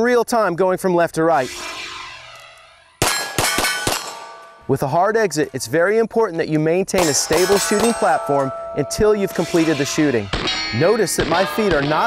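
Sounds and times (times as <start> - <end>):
steel targets ringing: 1.4 - 5.5, 7.0 - 12.0
rapid pistol shots: 3.0 - 4.4.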